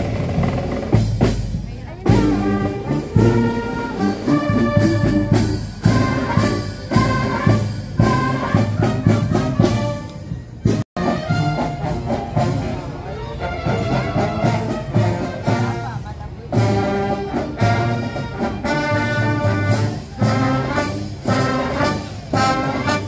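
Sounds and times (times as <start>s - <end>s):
marching brass band playing: 0.0s - 23.0s
steady drum beat: 0.0s - 23.0s.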